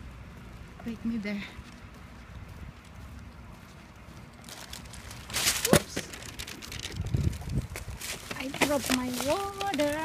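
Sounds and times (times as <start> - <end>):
faint crackly rustling: 0.0 - 10.0.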